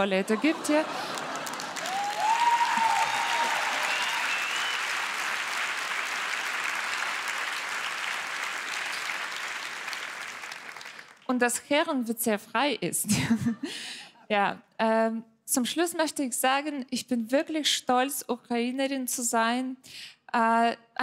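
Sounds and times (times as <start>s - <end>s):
audience applauding: 0.6s - 11.3s.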